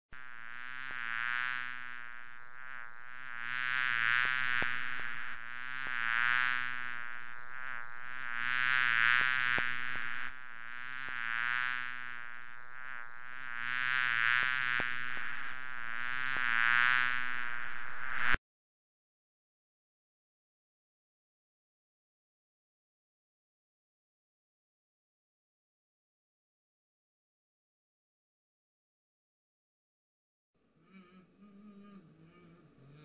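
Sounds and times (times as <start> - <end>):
fly buzzing: 0.2 - 18.4.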